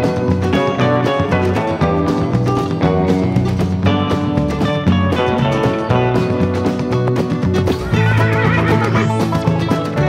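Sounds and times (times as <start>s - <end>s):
upbeat country music: 0.0s - 10.0s
horse whinny: 7.7s - 9.6s.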